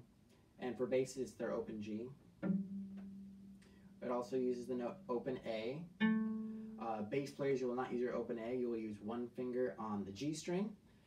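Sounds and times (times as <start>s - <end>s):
cello string plucked: 2.4s - 7.4s.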